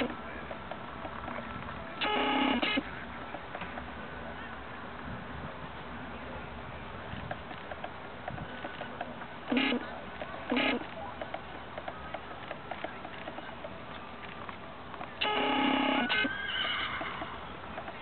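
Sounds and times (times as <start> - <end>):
horse whinnying: 15.2 - 17.5.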